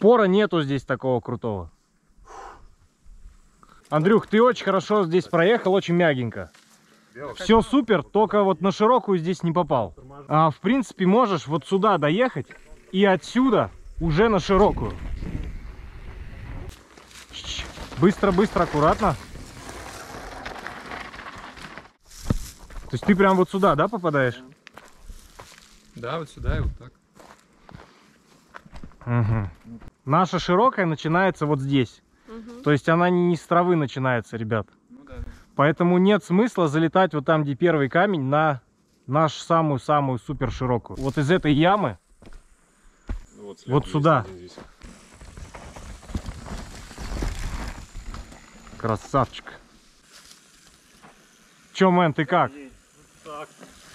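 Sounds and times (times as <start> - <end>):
bike tyres on loose dirt: 11.4 - 30.0, 41.0 - 53.9
tyres scrabbling over dirt and rocks: 16.7 - 24.0, 44.6 - 50.9.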